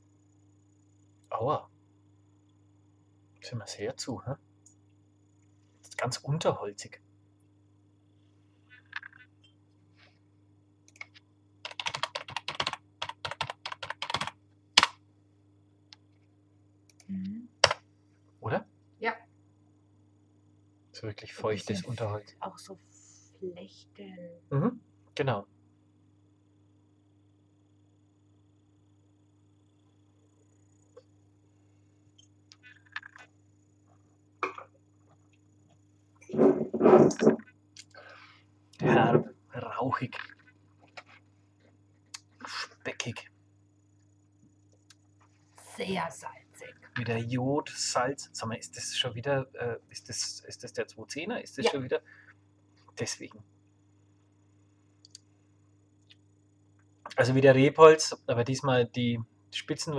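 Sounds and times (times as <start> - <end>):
typing on computer keyboard: 10.9 - 14.9.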